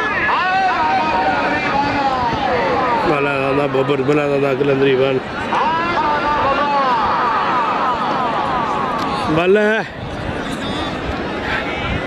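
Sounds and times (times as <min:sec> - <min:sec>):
large outdoor crowd: 0:00.0 - 0:12.0.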